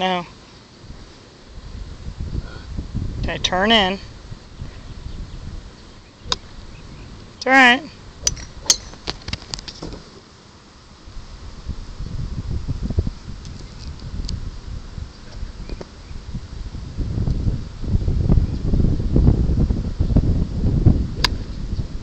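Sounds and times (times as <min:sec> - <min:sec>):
wind buffeting microphone: 0:00.8 - 0:10.0, 0:11.0 - 0:22.0.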